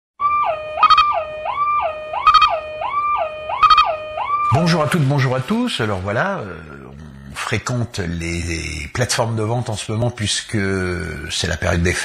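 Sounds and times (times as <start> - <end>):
two-tone warning siren: 0.2 - 5.3.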